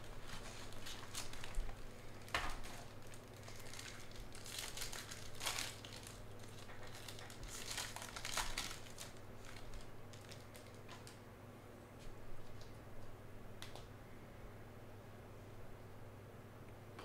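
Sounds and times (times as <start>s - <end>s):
foil wrapper crinkling: 0.0s - 11.2s.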